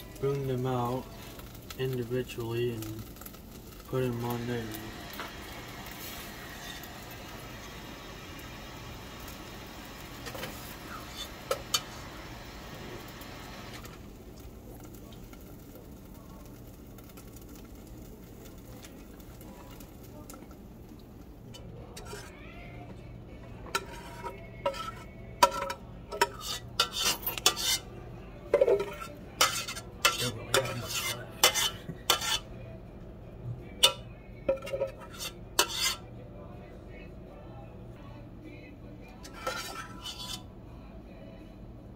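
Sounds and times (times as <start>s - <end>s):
metal spoon clinking in saucepan: 23.7s - 27.8s, 28.5s - 32.4s, 33.8s - 36.0s.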